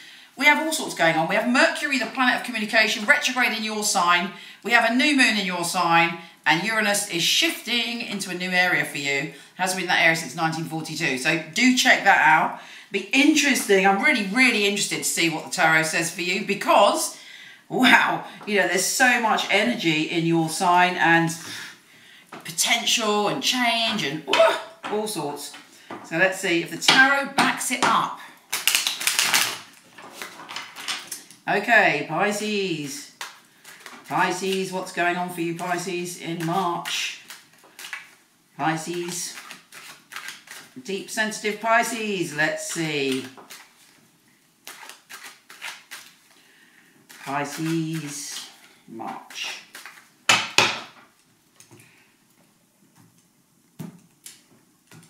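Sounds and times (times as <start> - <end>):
cards being shuffled: 28.5 - 31.4, 35.6 - 38.2, 38.9 - 40.8, 42.7 - 44.0, 44.6 - 46.4, 47.1 - 50.1.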